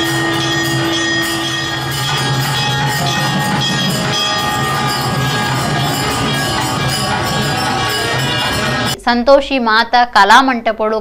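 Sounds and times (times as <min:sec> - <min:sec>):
music: 0:00.0 - 0:09.0
temple bells ringing: 0:00.0 - 0:09.0.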